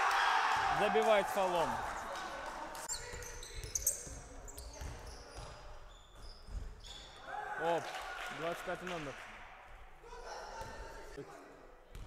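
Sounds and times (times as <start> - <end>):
sneakers squeaking on court: 2.8 - 7.3
basketball bouncing on hardwood: 3.1 - 5.6.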